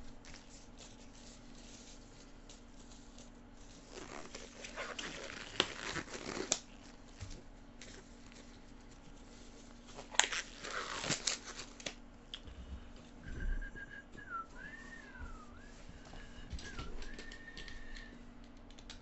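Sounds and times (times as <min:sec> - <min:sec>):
person whistling a tune: 0:13.2 - 0:18.2.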